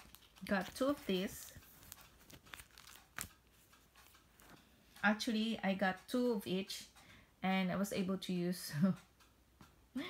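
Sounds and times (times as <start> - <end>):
paper sticker sheets rustling: 0.0 - 5.0.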